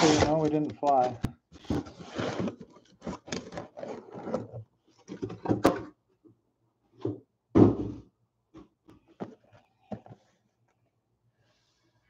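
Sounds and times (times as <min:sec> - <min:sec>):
cardboard rustles and scrapes: 0:00.0 - 0:05.5.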